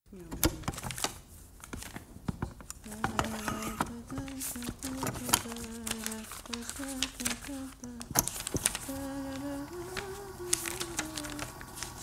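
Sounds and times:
person humming a slow tune: 2.8 - 8.2, 8.8 - 12.0.

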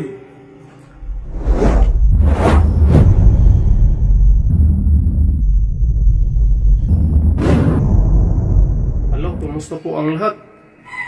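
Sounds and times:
deep low rumble: 1.0 - 9.7.

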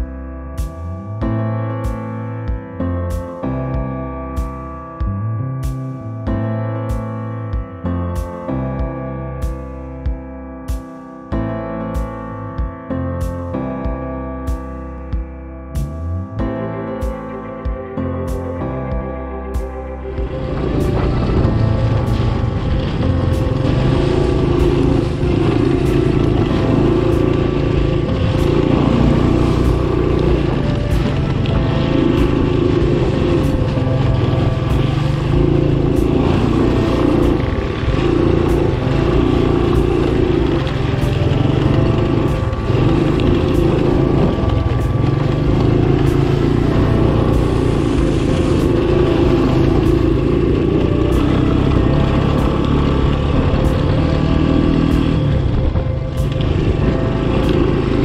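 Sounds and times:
engine revving while riding: 20.1 - 58.0.

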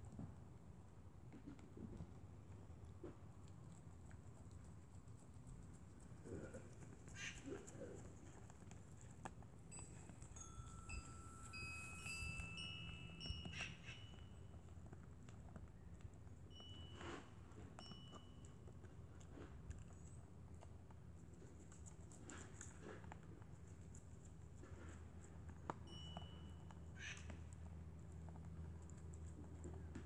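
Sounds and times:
deer chewing feed: 1.6 - 30.0
wind chimes ringing: 9.7 - 14.4, 17.8 - 18.4
thin steady high tone: 9.7 - 14.6.

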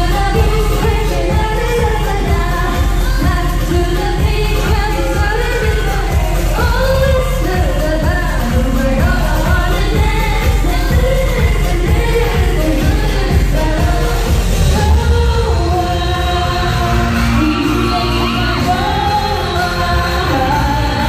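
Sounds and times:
dance backing track with kick drum: 0.0 - 21.0
woman singing: 0.0 - 21.0.

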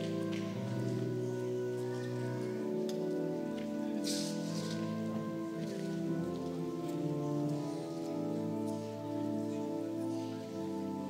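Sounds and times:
pipe organ playing chords: 0.0 - 11.0
brief rustle: 4.0 - 5.0.

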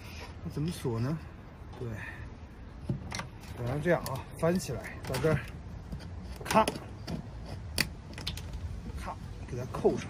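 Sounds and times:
metal lock catch clicking: 7.7 - 8.6.

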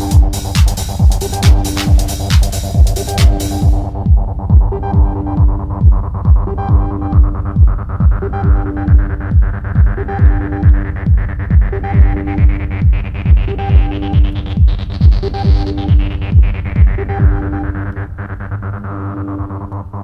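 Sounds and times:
high percussion: 0.0 - 17.9
techno kick drum: 0.0 - 18.0
repeating synth riff: 0.0 - 20.0.

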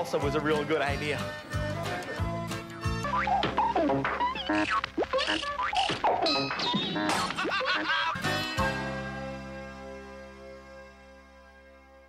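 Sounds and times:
music: 0.0 - 12.0
cartoon boings: 3.0 - 7.9.

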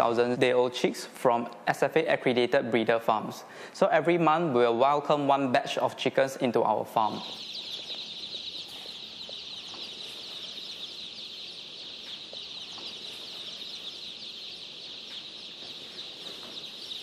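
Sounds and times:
chicks peeping: 3.2 - 17.0.

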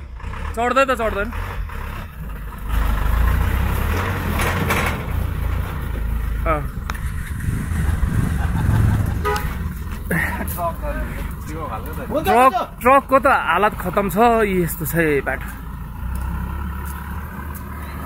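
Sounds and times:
diesel truck engine labouring: 0.0 - 18.0.

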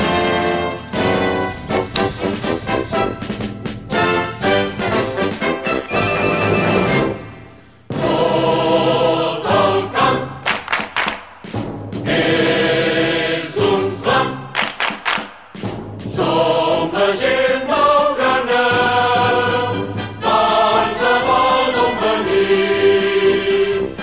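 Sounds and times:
choir singing held chords: 0.0 - 10.7, 11.4 - 14.8, 15.6 - 24.0.

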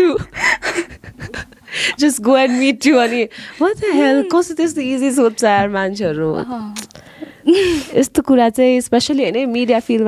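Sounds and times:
breathy laughter: 0.2 - 4.3
gasping in-breaths: 1.7 - 3.7.

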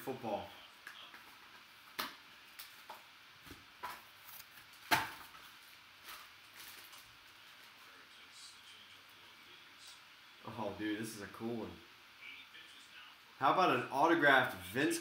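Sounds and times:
cardboard and foil rustling: 3.9 - 8.0.

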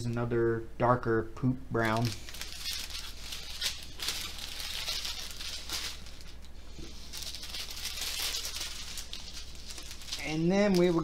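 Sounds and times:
low steady hum: 0.0 - 11.0
plastic bags crinkling: 1.8 - 11.0.

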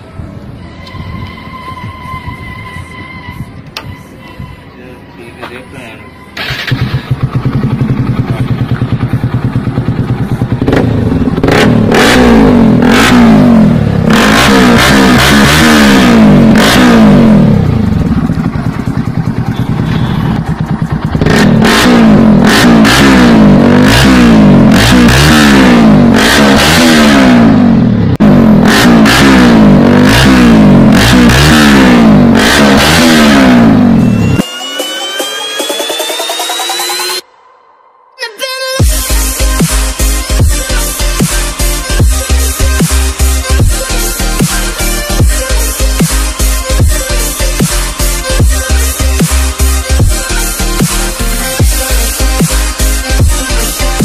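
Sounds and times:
electronic music with rising tone: 0.0 - 54.0
motorcycle engine idling and revving: 6.4 - 37.2, 38.8 - 54.0.

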